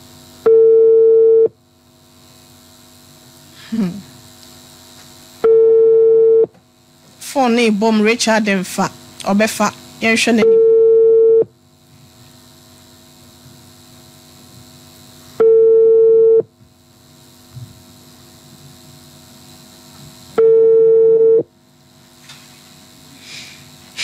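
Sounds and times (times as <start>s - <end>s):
telephone ringback tone: 0.5s - 1.5s, 5.4s - 6.5s, 10.4s - 11.5s, 15.4s - 16.5s, 20.4s - 21.4s.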